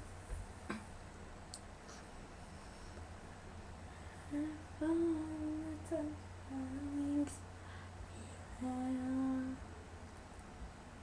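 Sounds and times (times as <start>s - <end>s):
steady low hum: 0.0s - 11.0s
girl humming a slow melody: 4.2s - 7.4s, 8.2s - 9.6s.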